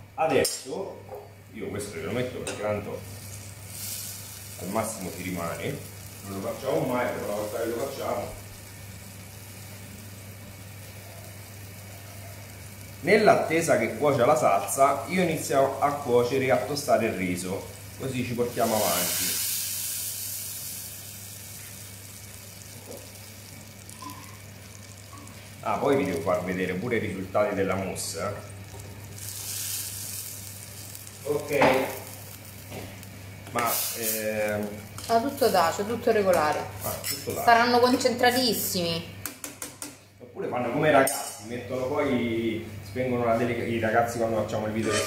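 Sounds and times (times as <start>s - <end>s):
sauce sizzling in saucepan: 1.8s - 39.3s.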